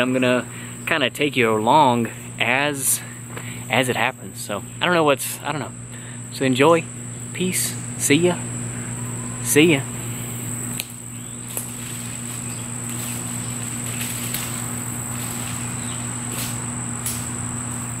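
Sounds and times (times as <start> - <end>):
insects droning: 0.0 - 18.0
low steady hum: 0.0 - 18.0.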